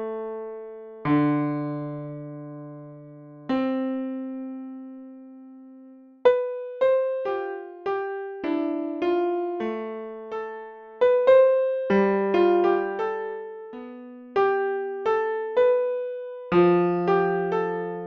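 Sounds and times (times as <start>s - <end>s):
piano chords: 0.0s - 18.0s.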